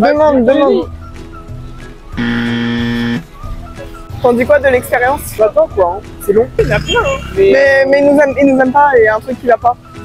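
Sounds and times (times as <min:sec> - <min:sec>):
light background music: 0:00.0 - 0:10.0
steady buzzing tone: 0:02.2 - 0:03.2.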